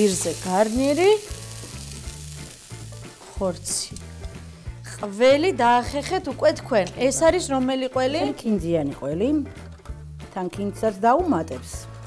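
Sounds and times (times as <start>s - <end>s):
vegetables sizzling faintly: 0.0s - 8.4s
soft background music: 0.0s - 12.0s.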